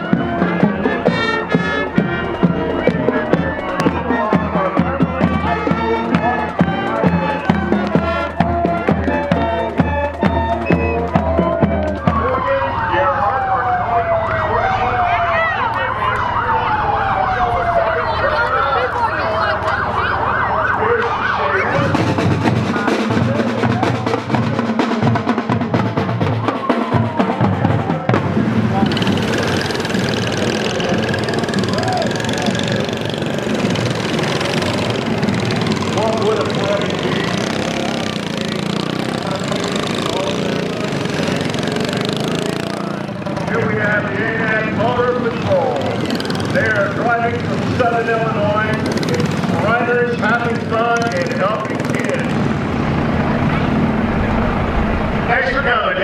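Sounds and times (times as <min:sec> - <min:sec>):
siren winding down: 0:00.0 - 0:06.0, 0:06.6 - 0:22.2
go-kart engines buzzing: 0:28.2 - 0:56.0.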